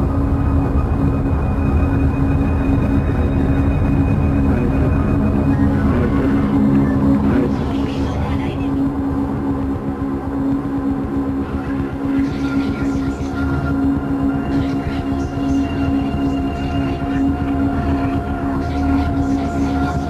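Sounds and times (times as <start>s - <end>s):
dense low rumble: 0.0s - 20.0s
droning tones: 0.0s - 20.0s
scratchy high noise flickers: 10.9s - 20.0s.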